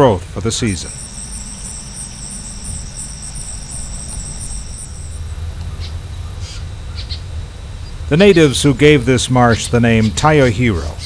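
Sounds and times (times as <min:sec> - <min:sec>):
insect trilling: 0:00.0 - 0:07.2
low steady rumble: 0:00.0 - 0:11.0.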